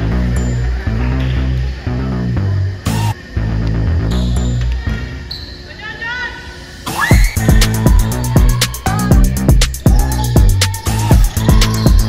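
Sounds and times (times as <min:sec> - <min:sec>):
music: 0:00.0 - 0:05.3, 0:06.6 - 0:12.0
basketball bouncing on court: 0:07.2 - 0:12.0.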